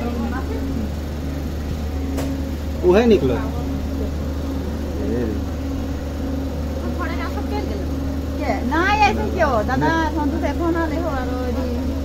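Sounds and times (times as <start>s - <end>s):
train coach rumble and hum: 0.0s - 12.0s.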